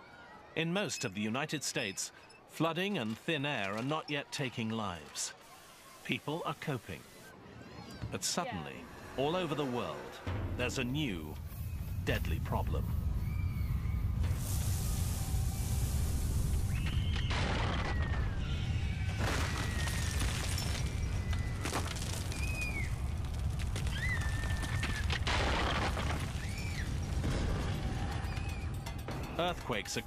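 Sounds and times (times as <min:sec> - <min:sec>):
earthquake rumble: 0:10.3 - 0:29.8
debris crashing: 0:16.8 - 0:29.7.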